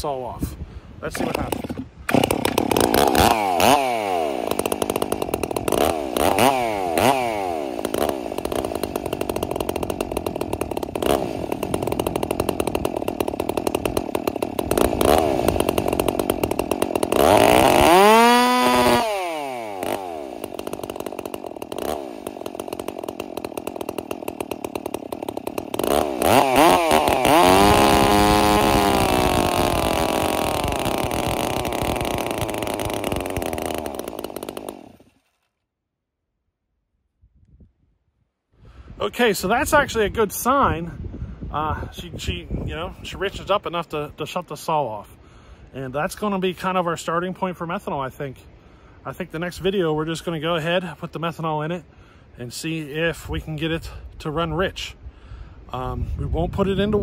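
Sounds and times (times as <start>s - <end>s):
chainsaw revving: 1.0s - 35.4s.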